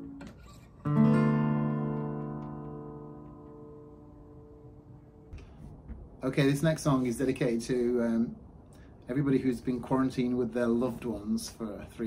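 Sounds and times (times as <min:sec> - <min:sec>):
acoustic guitar chord: 0:00.0 - 0:05.8
guitar string and finger noise: 0:00.0 - 0:06.2.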